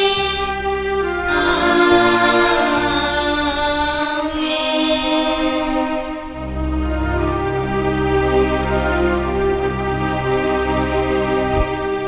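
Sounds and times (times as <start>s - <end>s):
slow church music: 0.0s - 12.0s.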